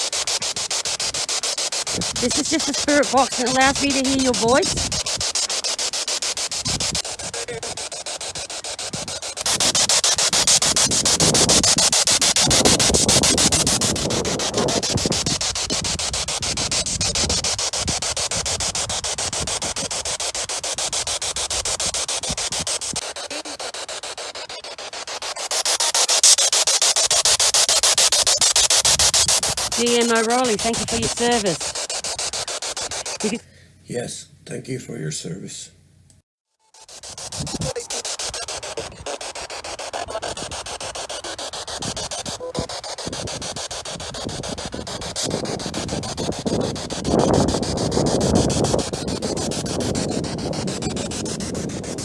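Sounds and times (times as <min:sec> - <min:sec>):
radio static hiss: 0:00.0 - 0:33.4, 0:36.6 - 0:52.0
rapid scan ticks: 0:00.0 - 0:33.4, 0:36.1 - 0:52.0
snatches of radio broadcast: 0:00.0 - 0:33.4, 0:36.6 - 0:52.0.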